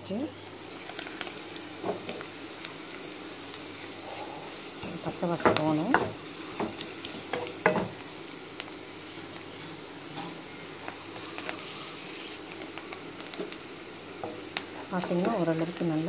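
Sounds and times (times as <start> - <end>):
onions sizzling in hot oil: 0.0 - 16.0.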